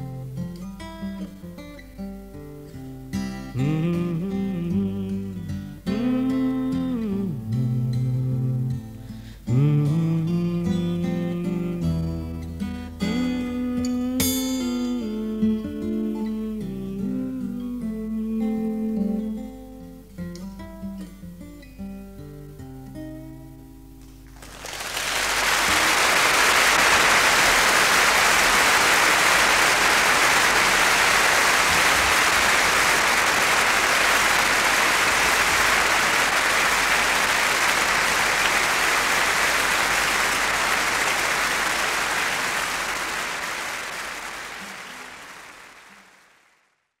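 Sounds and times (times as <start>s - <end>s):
audience applauding: 24.3s - 46.7s.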